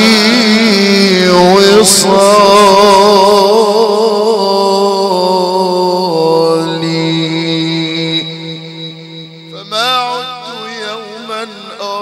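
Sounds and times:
man singing through a microphone: 0:00.0 - 0:12.0.

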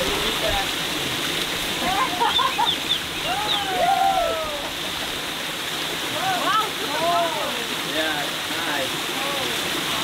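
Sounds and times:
waterfall pouring onto rocks: 0:00.0 - 0:10.0
people calling out: 0:03.2 - 0:04.8.

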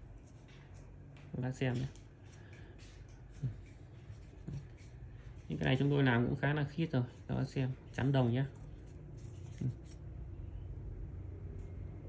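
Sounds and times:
low room hum: 0:00.0 - 0:12.0
hands rustling handling knife: 0:00.1 - 0:06.3, 0:08.0 - 0:10.1.

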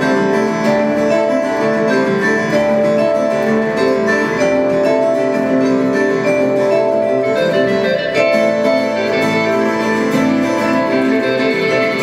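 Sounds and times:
acoustic guitars picking and strumming: 0:00.0 - 0:12.0.

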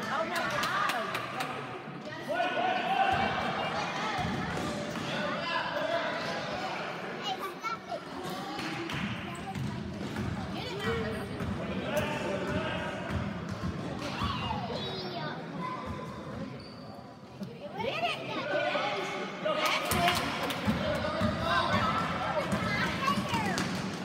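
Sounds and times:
people talking and calling out: 0:00.0 - 0:24.0
basketball bouncing on gym floor: 0:08.9 - 0:10.6, 0:20.7 - 0:23.9.

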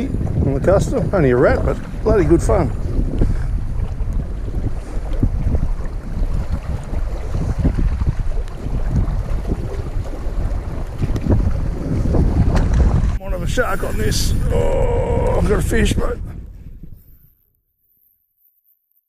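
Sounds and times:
wind buffeting microphone: 0:00.0 - 0:17.3.

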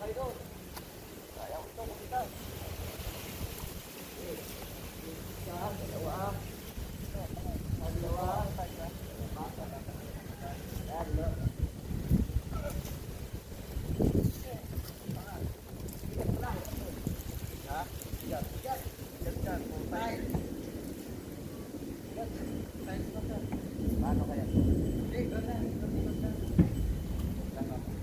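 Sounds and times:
voices: 0:00.0 - 0:28.0
wind rumbling on microphone: 0:00.0 - 0:28.0
man's voice: 0:22.2 - 0:26.6.

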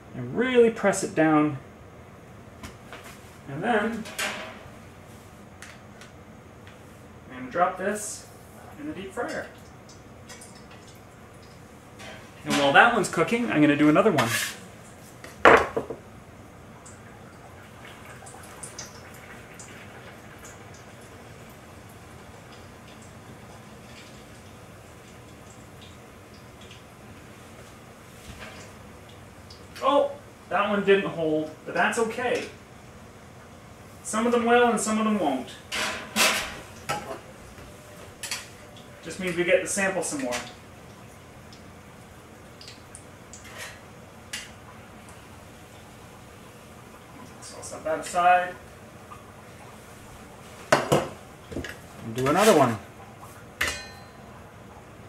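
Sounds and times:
oil sizzling and crackling: 0:16.1 - 0:30.6, 0:35.6 - 0:55.0.

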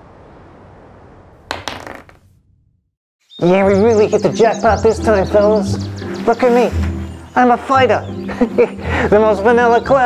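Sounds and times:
die clattering on table: 0:01.5 - 0:02.2.

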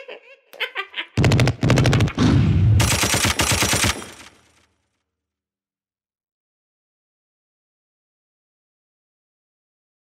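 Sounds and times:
rapid automatic gunfire: 0:01.2 - 0:04.7.

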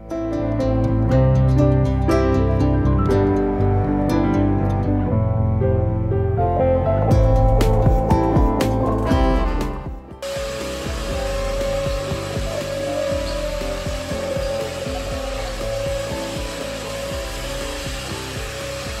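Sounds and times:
guitar music: 0:00.0 - 0:19.0
vacuum cleaner running: 0:10.2 - 0:19.0.

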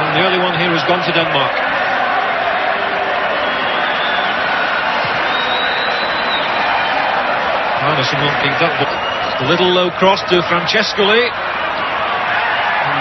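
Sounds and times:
stadium crowd din: 0:00.0 - 0:13.0.

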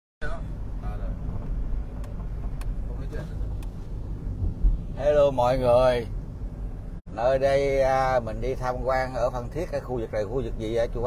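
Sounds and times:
car engine and tyres rumbling: 0:00.2 - 0:11.0.

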